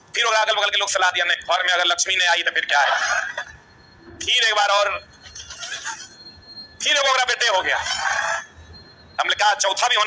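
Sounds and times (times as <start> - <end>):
man speaking: 0.1 - 3.1, 4.2 - 5.1, 6.8 - 8.0, 9.2 - 10.0.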